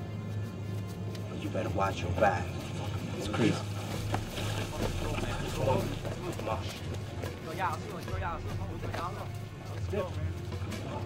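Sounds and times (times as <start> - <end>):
soft background music: 0.0 - 11.0
steady low hum: 0.0 - 11.0
indistinct voices: 1.2 - 11.0.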